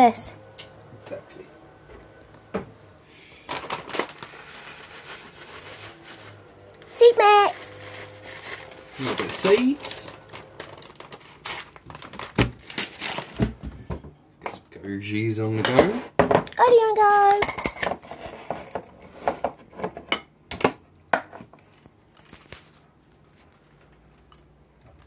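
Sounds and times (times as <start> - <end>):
packet crinkling: 3.4 - 6.2, 7.0 - 13.5.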